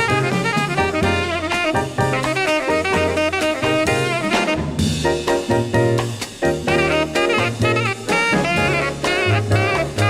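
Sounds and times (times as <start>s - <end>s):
saxophone melody: 0.0s - 5.0s, 6.5s - 10.0s
drums: 0.0s - 10.0s
low bass notes: 0.0s - 10.0s.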